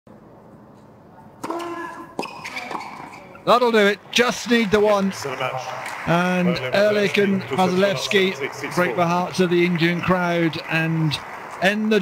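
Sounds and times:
hushed arena background: 0.1s - 12.0s
racket striking tennis ball: 1.4s - 3.2s.

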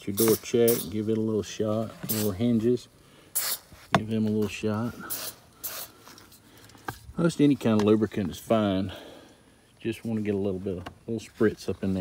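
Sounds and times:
aerosol spray hissing: 0.2s - 1.0s, 2.0s - 2.4s, 3.3s - 3.8s, 5.0s - 6.0s.

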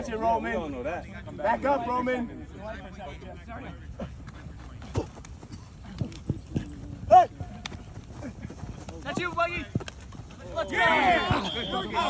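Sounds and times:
sideline voices: 2.4s - 12.0s
feet running on artificial turf: 4.0s - 12.0s.

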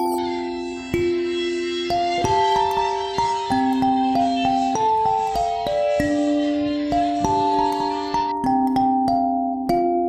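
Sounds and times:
kalimba melody: 0.0s - 10.0s.

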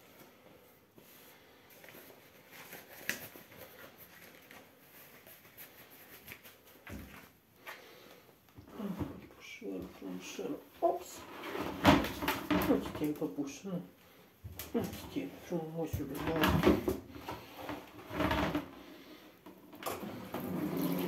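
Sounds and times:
person speaking: 8.7s - 14.0s, 14.6s - 17.1s.

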